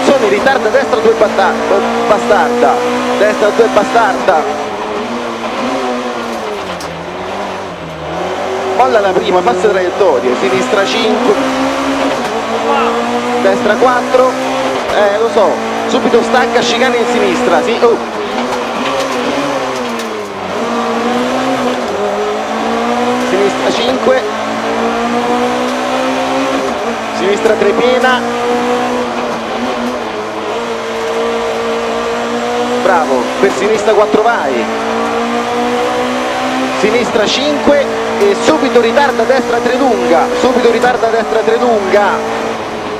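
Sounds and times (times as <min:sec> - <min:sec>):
rally car engine: 0:00.0 - 0:42.9.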